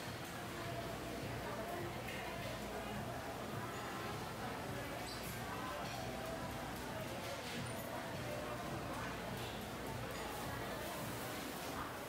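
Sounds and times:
indistinct chatter of diners: 0.0s - 12.0s.

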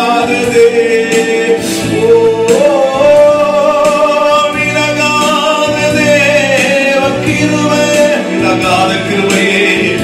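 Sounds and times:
man singing into a microphone: 0.0s - 10.0s
sustained instrumental accompaniment: 0.0s - 10.0s.

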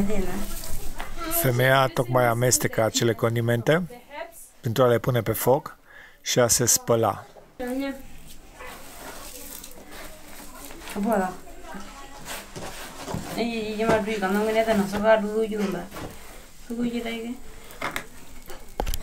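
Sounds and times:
rustling: 0.0s - 1.7s, 7.6s - 19.0s.

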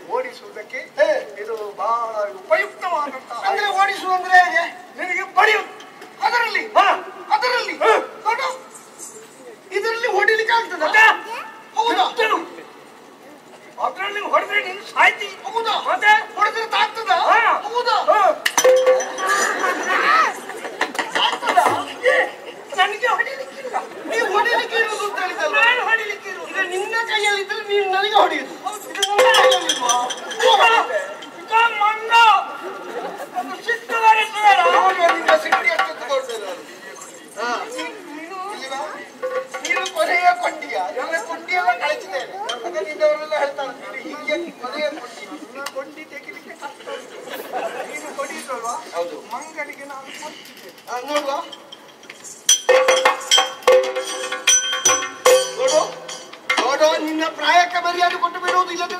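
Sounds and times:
man talking: 0.0s - 8.7s, 9.5s - 12.8s, 13.7s - 18.9s, 21.1s - 51.6s, 55.3s - 58.9s
hand cymbals clanging: 18.4s - 20.1s, 28.6s - 31.8s, 38.7s - 41.2s, 51.2s - 58.9s.

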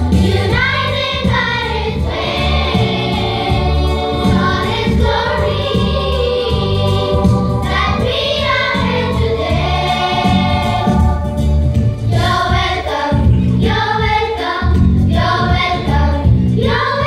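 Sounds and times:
children's choir singing: 0.0s - 17.0s
instrumental backing with bass line: 0.0s - 17.0s.

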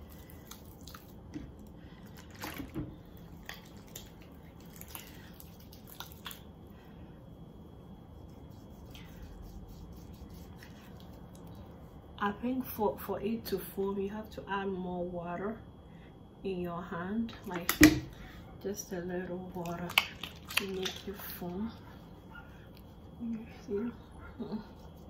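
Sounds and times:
wet hands rubbing: 3.2s - 6.5s, 7.6s - 12.1s, 19.6s - 25.0s.

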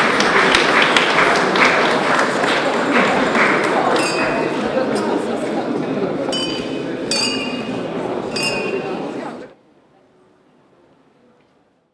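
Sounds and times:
crowd chatter: 0.0s - 11.9s
wine glasses clinking: 4.0s - 4.7s, 6.3s - 9.1s.

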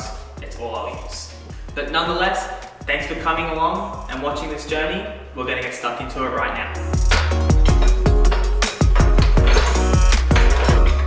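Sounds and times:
electronic music with heavy bass: 6.2s - 11.0s.

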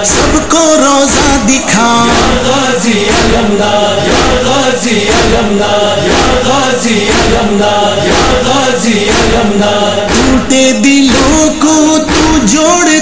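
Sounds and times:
male voices singing in chorus: 0.0s - 13.0s
steady percussive beat: 0.0s - 13.0s.

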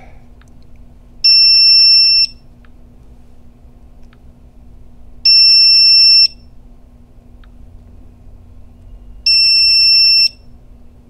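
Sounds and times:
electronic alarm beeps: 1.2s - 2.4s, 5.3s - 6.5s, 8.7s - 10.5s.

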